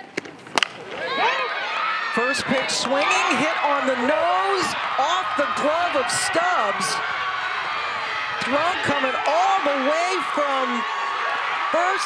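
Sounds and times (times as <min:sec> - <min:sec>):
softball bat cracking ball: 0:00.1 - 0:01.1, 0:02.4 - 0:03.6.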